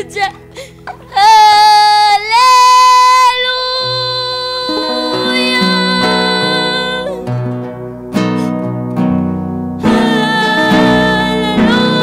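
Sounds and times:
woman singing: 0.0 - 0.4, 1.1 - 7.3, 9.8 - 12.0
acoustic guitars: 0.0 - 12.0
electric bass: 6.7 - 12.0.

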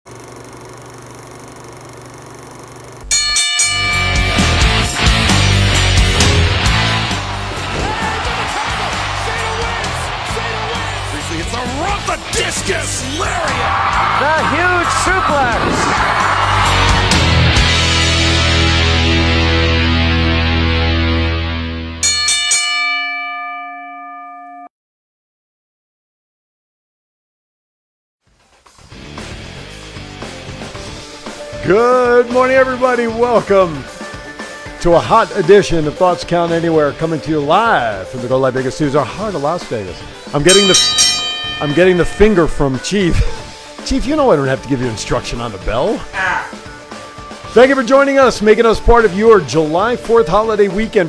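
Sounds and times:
loud bell-like strike: 3.1 - 5.5, 40.5 - 43.4
intro music: 3.8 - 22.0.

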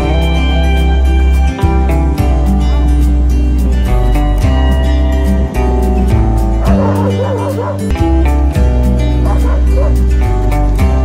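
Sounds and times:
music with steady beat: 0.0 - 11.0
dog crying high-pitched: 6.6 - 7.9.

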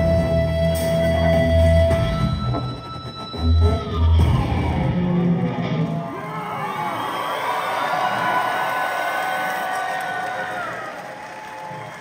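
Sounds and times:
live industrial rock song: 0.0 - 6.3
crowd cheering and whooping: 4.7 - 12.0.

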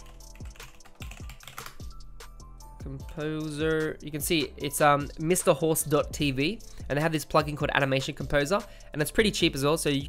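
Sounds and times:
keyboard typing: 0.0 - 1.9
soft background music: 0.0 - 10.0.

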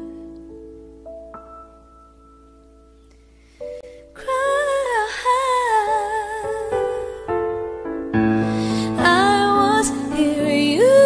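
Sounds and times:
woman singing wordless melody: 0.0 - 0.8, 4.1 - 7.8, 8.5 - 11.0
sustained keyboard chords: 0.0 - 4.0.

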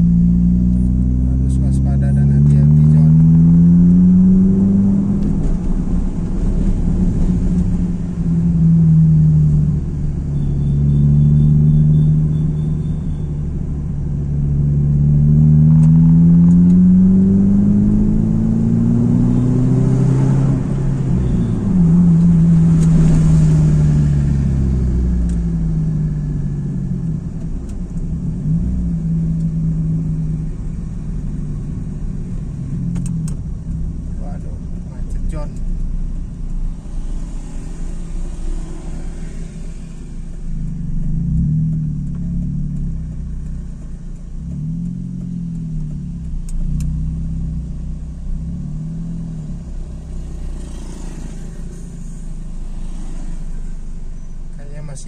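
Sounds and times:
car engine hum: 0.0 - 55.0
road rumble: 0.0 - 55.0.

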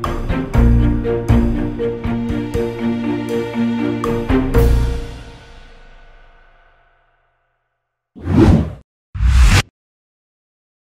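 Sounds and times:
whoosh transition: 8.2 - 9.7.

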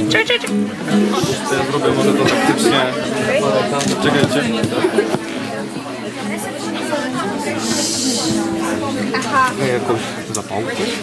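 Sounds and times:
chatter of young people: 0.0 - 11.0
brief hiss: 7.6 - 8.3.

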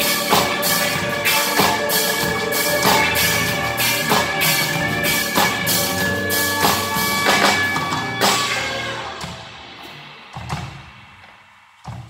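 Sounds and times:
live band playing: 0.0 - 11.1.

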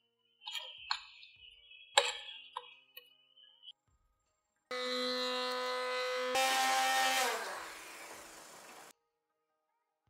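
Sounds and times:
immersion blender whining: 4.7 - 8.9.

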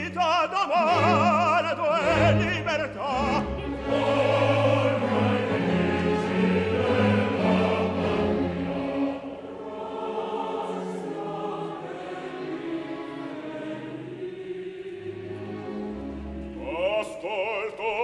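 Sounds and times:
opera chorus singing: 0.0 - 18.0.

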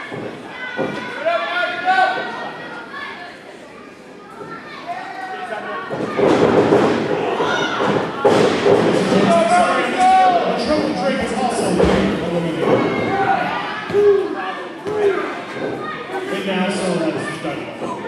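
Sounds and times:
people shouting: 12.6 - 16.4.

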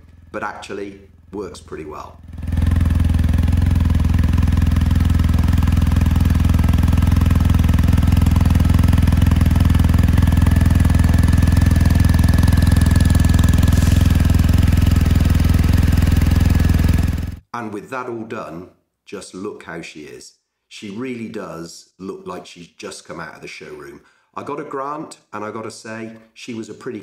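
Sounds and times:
motorcycle engine idling: 0.0 - 17.4.

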